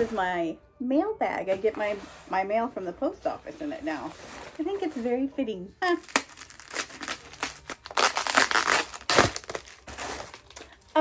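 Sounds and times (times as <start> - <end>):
plastic mailer bag crinkling: 5.9 - 11.0.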